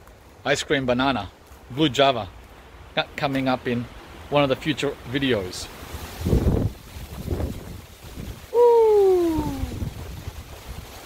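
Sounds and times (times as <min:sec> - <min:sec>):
man hooting: 0:08.5 - 0:09.8.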